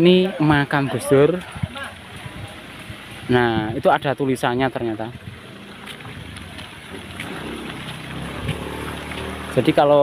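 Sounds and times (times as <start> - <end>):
traffic engine hum: 0.0 - 10.0.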